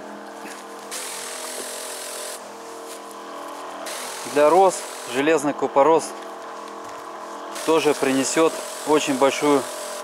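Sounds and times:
motorized garden sprayer running: 0.5s - 10.0s
spray hissing from nozzle: 0.9s - 2.4s, 3.9s - 5.3s, 7.6s - 10.0s.

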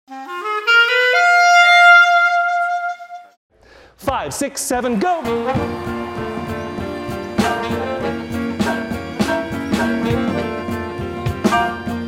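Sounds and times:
wind instrument run to high note: 0.1s - 3.4s, 5.3s - 12.0s.

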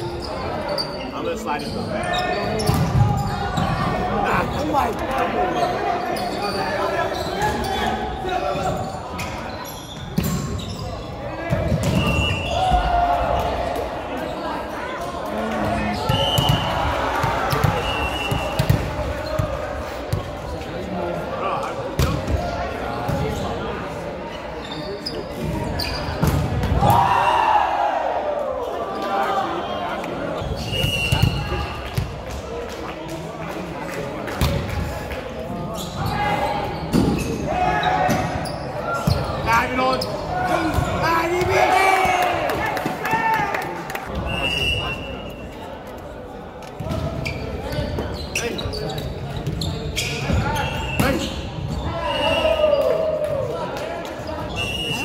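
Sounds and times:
shoe squeaks: 0.0s - 12.7s, 24.3s - 26.3s, 30.4s - 31.8s, 35.7s - 40.9s, 46.9s - 52.6s
players shouting: 11.6s - 14.2s, 26.7s - 29.8s, 37.4s - 44.8s.

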